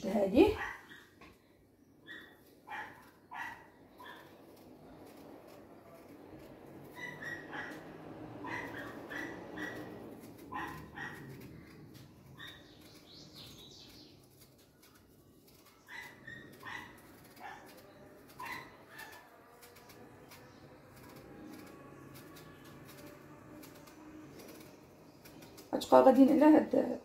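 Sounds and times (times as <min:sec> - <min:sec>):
animal high-pitched calls: 0:06.8 - 0:12.9.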